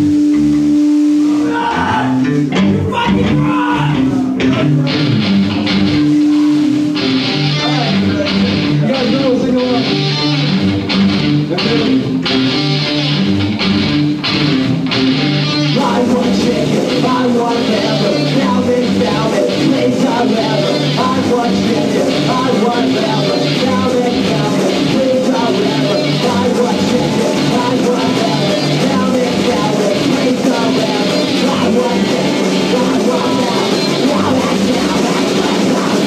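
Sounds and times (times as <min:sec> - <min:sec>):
punk rock band playing: 0:00.0 - 0:36.0.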